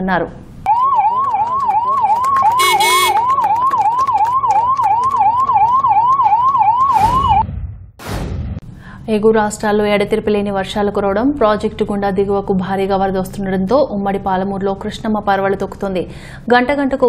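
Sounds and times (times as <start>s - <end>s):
ambulance siren yelping: 0.7s - 7.4s
short buzzy siren blast: 0.7s - 7.5s.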